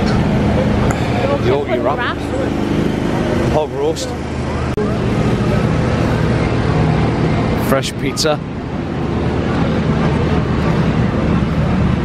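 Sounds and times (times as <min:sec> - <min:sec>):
steady low drone: 0:00.0 - 0:12.0.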